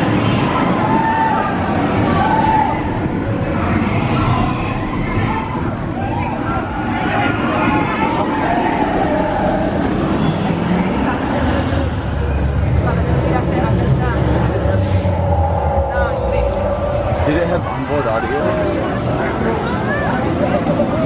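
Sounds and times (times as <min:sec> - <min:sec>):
roller coaster rumbling on track: 0:00.0 - 0:21.0
people talking: 0:03.4 - 0:21.0.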